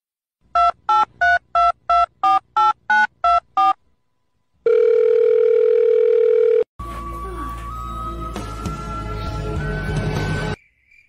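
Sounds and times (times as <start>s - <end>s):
phone ringback tone: 4.6s - 6.7s.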